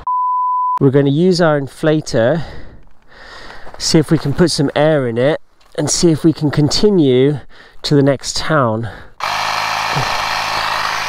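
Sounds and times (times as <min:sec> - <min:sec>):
cordless tyre inflator running: 0:09.2 - 0:11.0.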